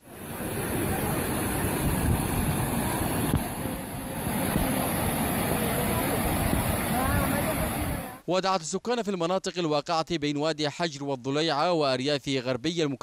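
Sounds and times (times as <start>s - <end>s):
floodwater rushing: 0.0s - 8.2s
faint voices of bystanders: 0.2s - 8.2s.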